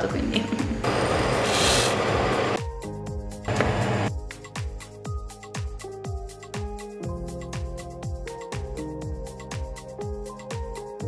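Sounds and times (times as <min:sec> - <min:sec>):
background music with steady beat: 0:02.6 - 0:11.0.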